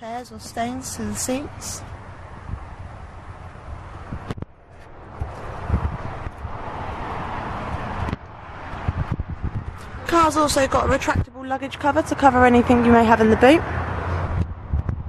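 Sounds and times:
wind on microphone: 0.3 - 11.4, 12.1 - 15.0
microphone handling thumps: 5.1 - 6.6, 7.6 - 10.0.

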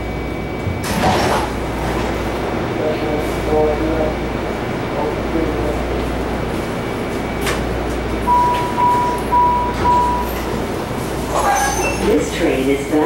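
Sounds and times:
rail car humming: 0.0 - 13.0
automated announcement: 2.5 - 7.4, 8.0 - 13.0
short beeps: 8.3 - 10.5.

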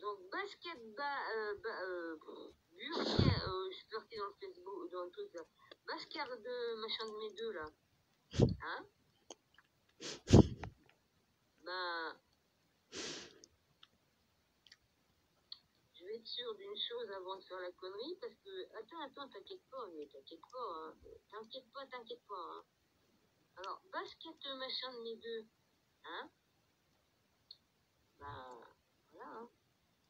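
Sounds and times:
woman speaking: 0.0 - 7.8, 8.4 - 8.9, 11.6 - 12.2, 16.0 - 22.7, 23.6 - 26.4, 28.2 - 29.6.

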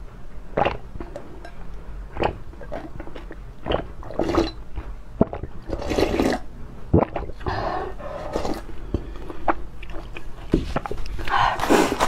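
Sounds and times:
person gulping and slurping: 0.5 - 11.2.

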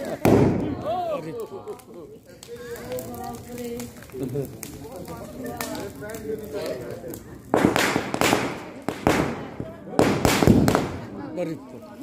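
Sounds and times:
firecrackers banging and crackling: 0.0 - 12.0.

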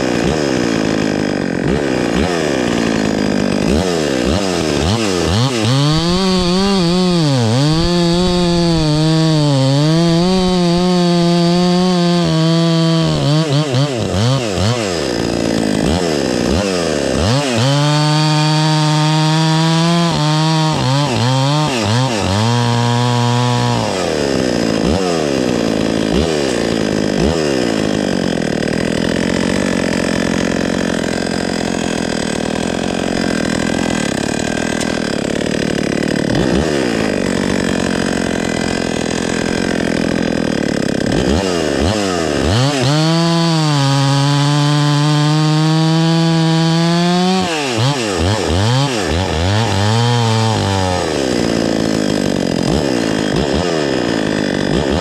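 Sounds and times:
chainsaw cutting log: 0.0 - 55.0.

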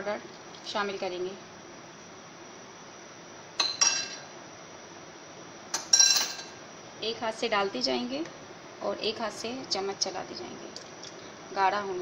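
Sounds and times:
crockery and utensils clinking: 5.8 - 6.6.

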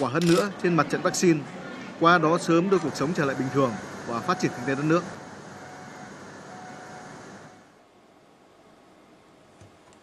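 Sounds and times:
industrial hum and hiss: 0.0 - 10.0.

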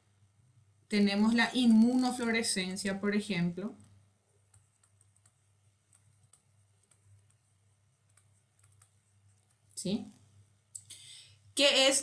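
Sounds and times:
stylus tapping on tablet screen: 3.8 - 9.7.

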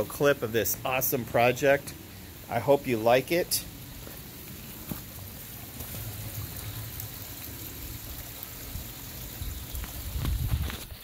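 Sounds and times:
pond water trickling: 0.0 - 11.0.

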